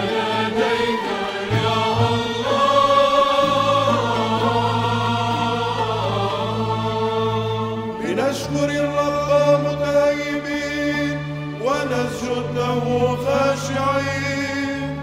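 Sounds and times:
choir singing chant: 0.0s - 15.0s.

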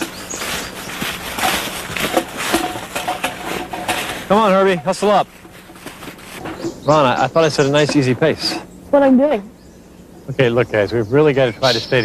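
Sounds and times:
footsteps crunching dry leaves: 0.0s - 6.7s.

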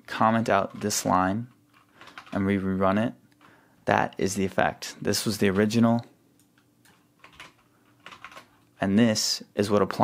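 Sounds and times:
keyboard keys clicking: 6.5s - 8.5s.

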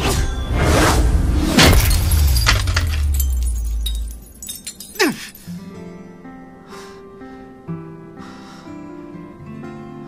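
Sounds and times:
phone smashing on floor: 1.6s - 4.8s
pieces clinking and skittering: 1.6s - 5.5s.

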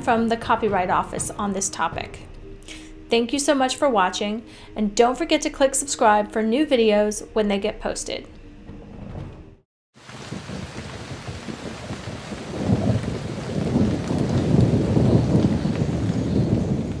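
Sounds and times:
deep thunder rumble: 10.0s - 17.0s
rain-like hiss: 10.0s - 17.0s.

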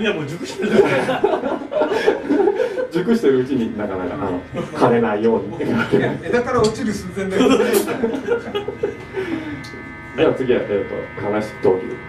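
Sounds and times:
men talking: 0.0s - 12.0s
men chuckling: 0.4s - 3.0s, 4.5s - 4.8s, 5.5s - 6.2s, 7.3s - 9.7s.

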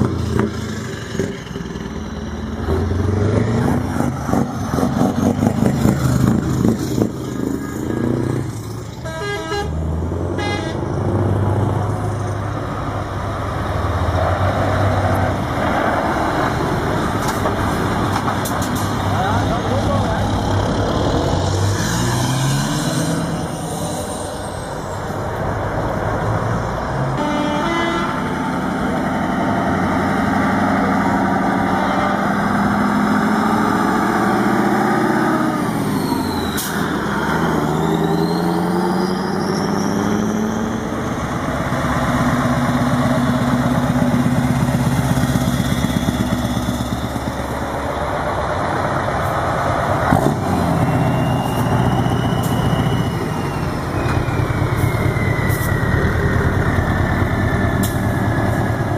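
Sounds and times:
heavy truck diesel engines: 0.0s - 58.9s
truck driving past: 0.0s - 58.9s.

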